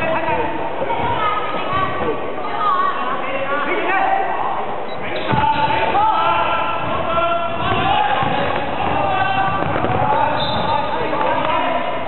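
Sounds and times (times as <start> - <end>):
sports hall noise: 0.0 - 12.0
basketball dribbling on hardwood: 7.6 - 10.8.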